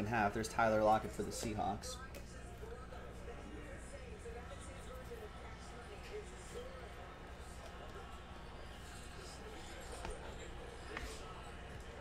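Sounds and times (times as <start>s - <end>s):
faint voices: 0.0s - 12.0s
low electrical hum: 0.0s - 12.0s.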